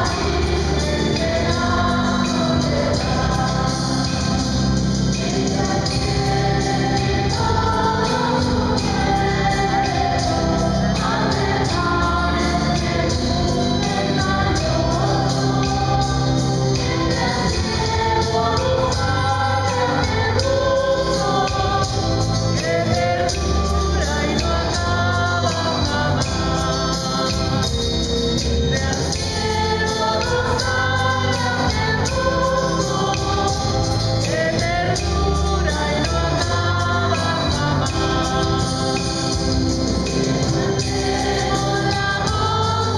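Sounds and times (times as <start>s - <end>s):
choir singing a hymn: 0.0s - 42.9s
electronic keyboard: 0.0s - 42.9s
low musical accompaniment: 0.0s - 42.9s.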